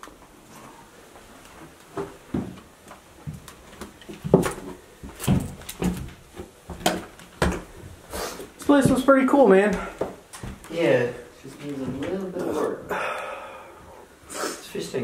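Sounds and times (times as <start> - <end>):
footsteps on wooden stairs: 1.1 - 10.9.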